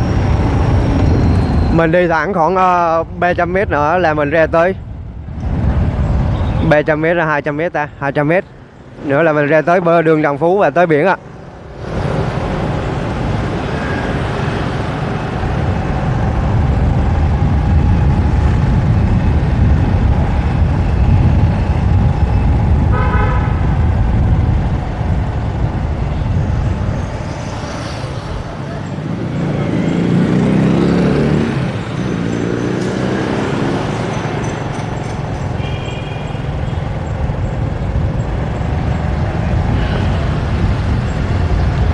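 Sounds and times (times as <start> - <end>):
traffic rumble and road noise: 0.0 - 41.9
vehicle horn toot: 22.9 - 23.7, 35.6 - 36.8.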